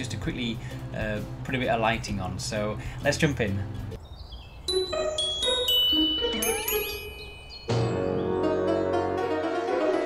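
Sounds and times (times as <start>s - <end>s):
chime-like dings: 4.7s - 8.0s
rising gliding squeak: 4.7s - 8.9s
keyboard chord: 4.7s - 10.0s.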